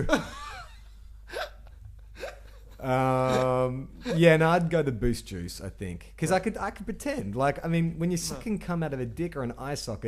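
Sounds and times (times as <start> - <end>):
man saying um: 2.8 - 4.4, 8.0 - 8.8.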